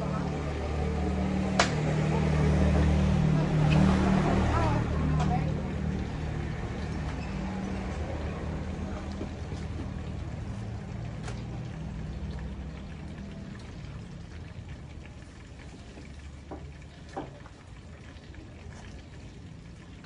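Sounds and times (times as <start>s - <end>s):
low engine hum: 0.0s - 20.0s.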